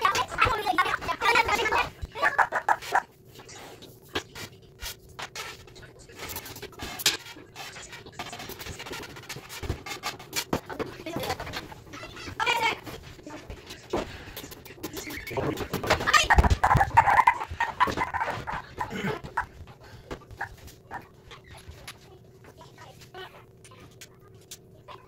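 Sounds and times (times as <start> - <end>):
sped-up voices: 0.0 - 4.8, 10.6 - 25.0.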